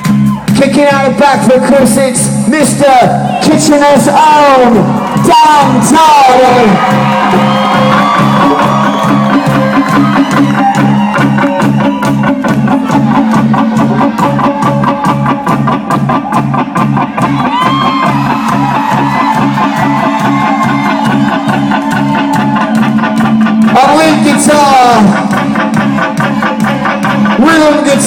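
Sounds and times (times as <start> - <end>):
live rock band playing: 0.0 - 28.0
electric guitar lead with bends: 7.3 - 28.0.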